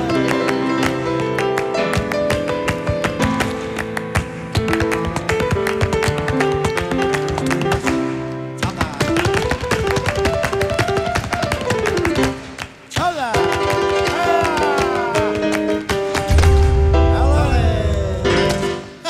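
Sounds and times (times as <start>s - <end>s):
rhythmic hand-clapping: 0.0s - 16.8s
flamenco piano music: 0.0s - 19.0s.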